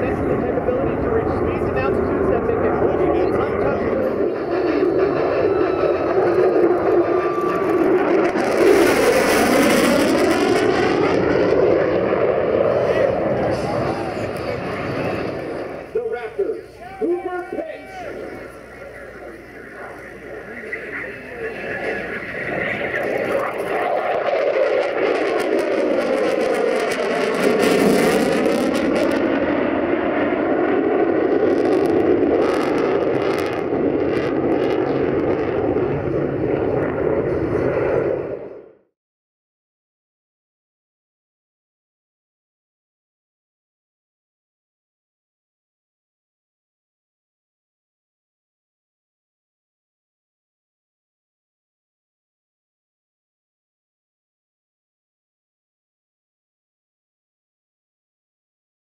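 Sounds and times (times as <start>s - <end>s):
jet engines flyby: 0.0s - 39.0s.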